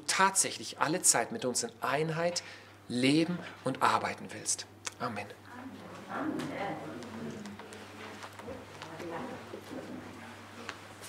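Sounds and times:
book pages rustling: 7.0s - 9.0s.

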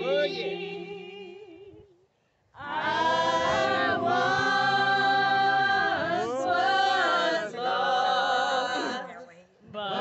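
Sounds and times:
group singing a cappella: 0.0s - 1.7s, 2.6s - 10.0s.

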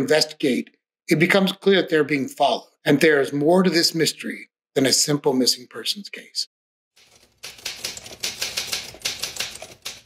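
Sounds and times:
typewriter key strikes: 7.0s - 10.0s.

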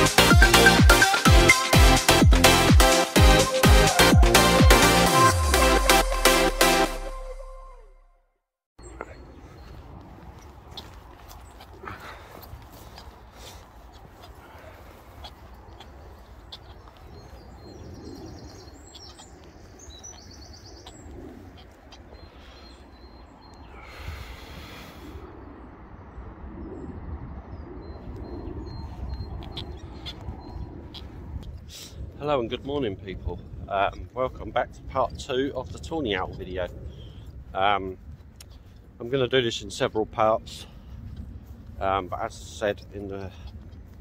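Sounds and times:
footsteps on dirt path: 8.8s - 24.3s, 28.6s - 44.0s
faint bird calls: 8.8s - 32.2s, 36.0s - 39.0s
wind rumble: 8.8s - 44.0s.

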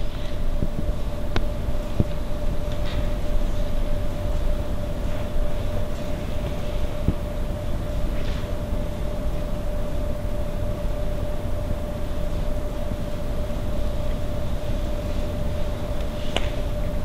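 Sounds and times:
constant mid-pitched tone: 0.0s - 17.0s
room hum and low rumble: 0.0s - 17.0s.

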